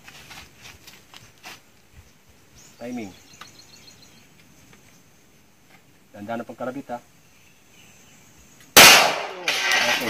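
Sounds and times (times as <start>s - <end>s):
handgun shot: 8.8s - 10.0s.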